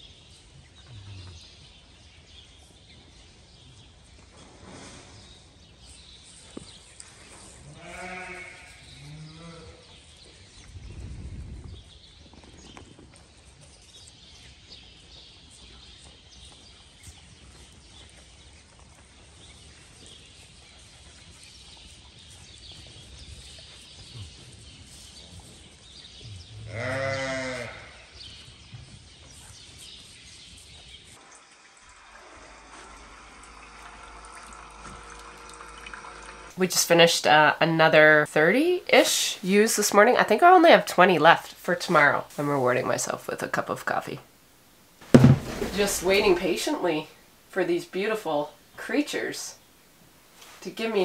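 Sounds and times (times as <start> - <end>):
sheep bleating: 7.8 - 9.7, 26.7 - 28.0
coffee maker humming: 31.2 - 36.6.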